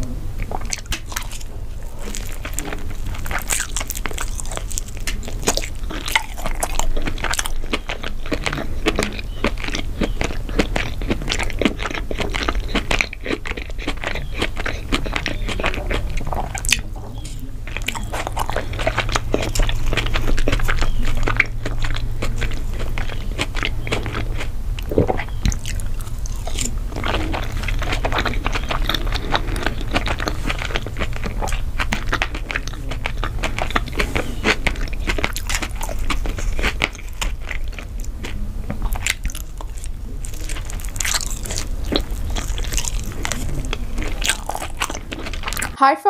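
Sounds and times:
chewing and crunching: 0.0 - 45.8
low steady hum: 0.0 - 46.0.

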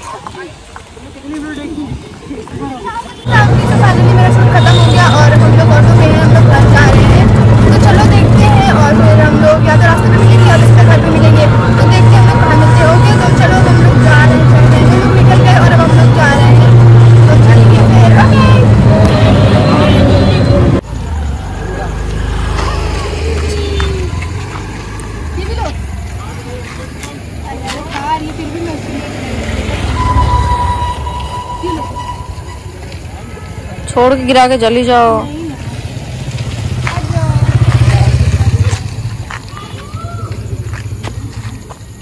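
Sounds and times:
faint outdoor noises: 0.0 - 42.0
rickshaw engine hum: 0.0 - 42.0
voices: 0.0 - 42.0.

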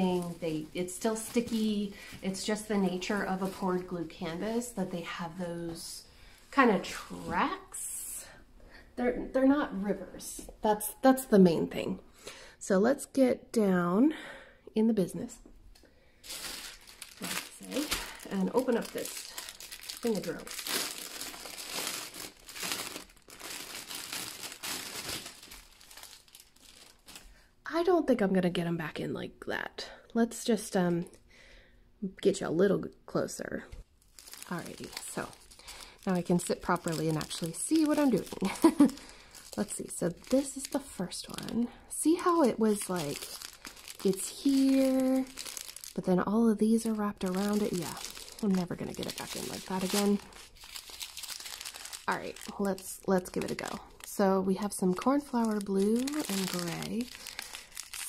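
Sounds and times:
plastic wrap crinkling: 0.0 - 4.8, 16.2 - 27.4, 34.0 - 58.0.

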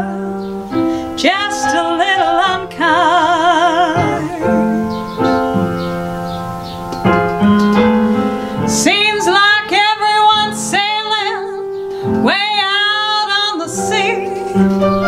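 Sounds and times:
woman singing a ballad: 0.0 - 5.5, 8.6 - 14.6
piano: 0.0 - 15.0.

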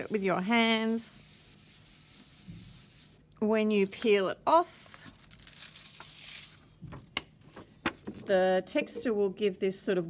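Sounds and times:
paper peeling off foil: 4.8 - 6.7.

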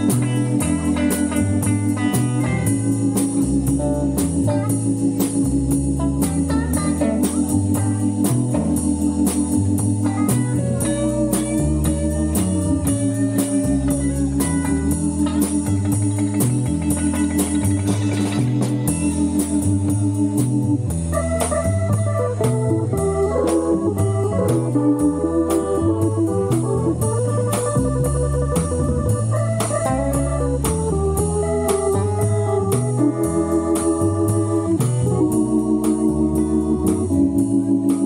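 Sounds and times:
bass line: 0.0 - 38.0
organ-toned keyboard: 0.0 - 38.0
steady drum beat: 0.0 - 38.0.

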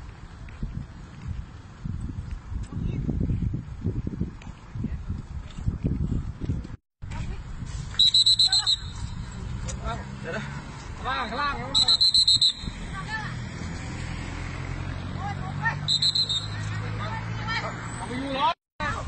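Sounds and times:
high-pitched electronic alarm beeping: 15.9 - 16.7.

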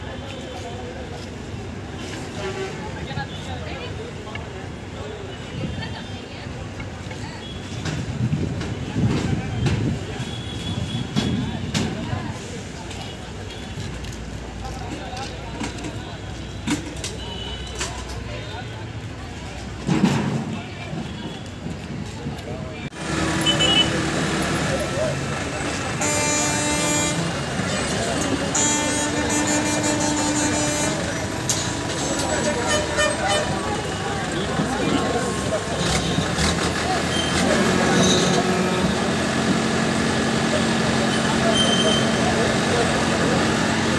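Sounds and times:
diesel engine running: 22.9 - 43.9.

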